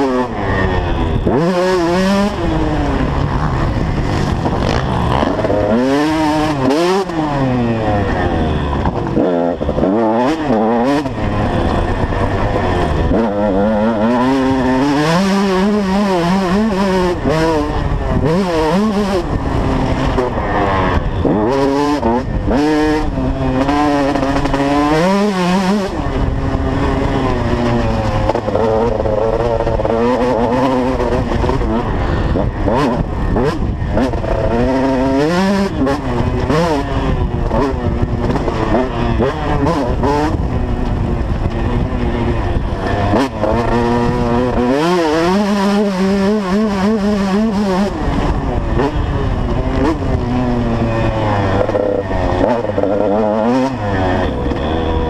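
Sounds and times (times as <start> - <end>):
motorcycle engine revving: 0.0 - 55.0.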